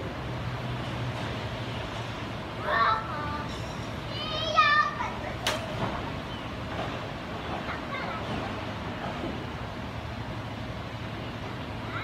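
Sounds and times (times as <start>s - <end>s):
low background hum: 0.0s - 12.0s
child calling out: 4.1s - 5.2s.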